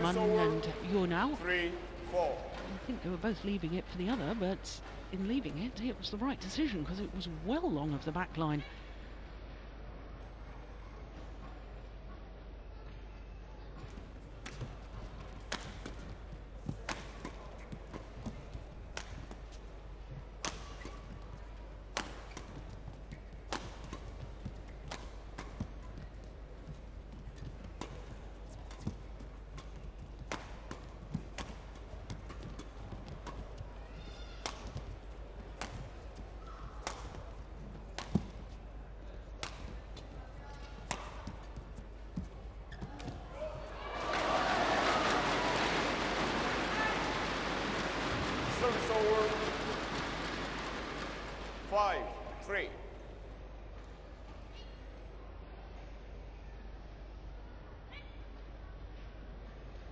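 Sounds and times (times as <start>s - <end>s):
rackets hitting shuttlecock: 15.4s - 16.1s, 16.7s - 19.4s, 20.4s - 21.1s, 21.9s - 26.0s, 27.3s - 38.6s, 39.3s - 41.5s
shoes squeaking on court: 22.1s - 35.0s, 39.9s - 43.7s.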